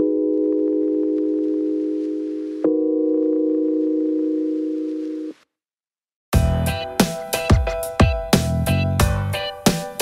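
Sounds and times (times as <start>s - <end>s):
music with drum beat: 6.4s - 10.0s.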